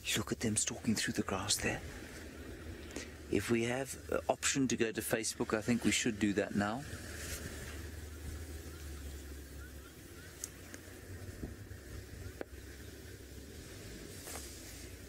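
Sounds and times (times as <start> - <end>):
light hiss: 0.0 - 15.0
low steady rumble: 0.0 - 15.0.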